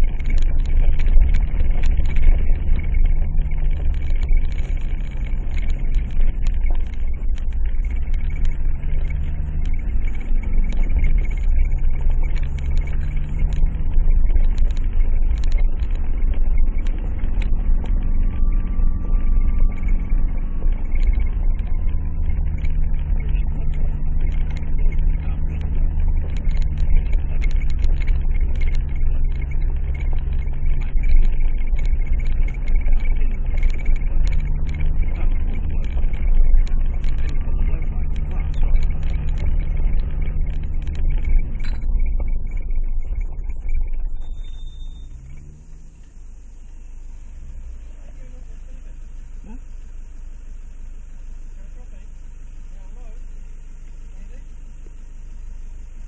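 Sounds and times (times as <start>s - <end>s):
steady low rumble: 0.0s - 56.0s
vehicle engine at low revs: 0.0s - 56.0s.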